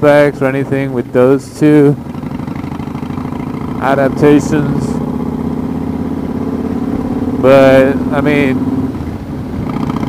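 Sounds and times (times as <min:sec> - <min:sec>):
motorcycle engine running steadily: 0:00.0 - 0:10.0.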